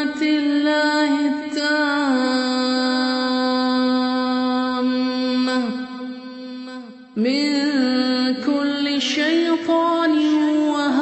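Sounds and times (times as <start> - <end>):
person chanting melodically: 0.0 - 11.0.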